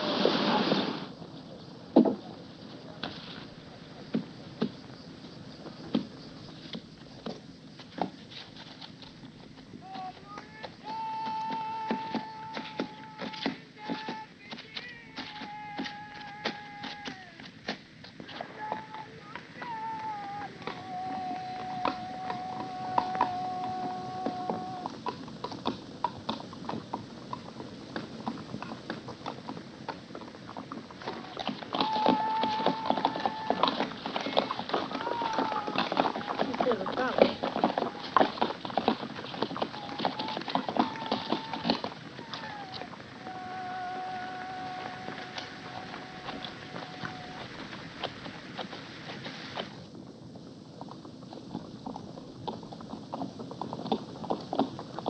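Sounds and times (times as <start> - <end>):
hoofbeats clattering: 1.3 - 49.9, 50.5 - 55.0
man singing a chant: 18.4 - 24.8.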